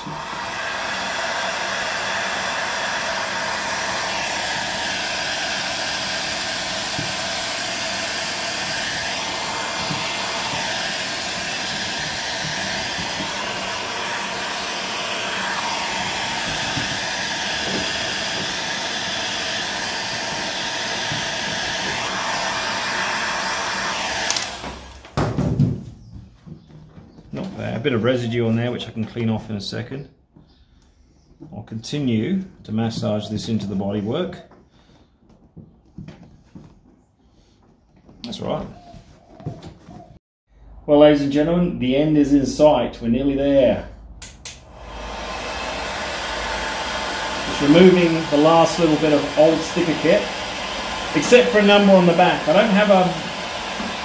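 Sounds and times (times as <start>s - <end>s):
heat gun blowing air: 0.0s - 25.2s, 44.2s - 54.0s.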